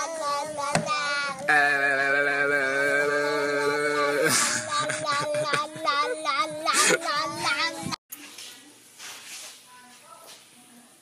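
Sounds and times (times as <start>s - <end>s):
high singing voice: 0.0s - 8.0s.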